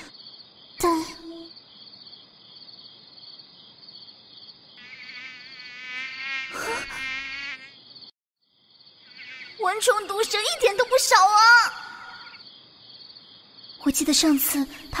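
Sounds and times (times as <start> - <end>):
night insects chirring: 0.0 - 15.0
mosquito buzzing whine: 4.8 - 8.1, 9.0 - 10.1.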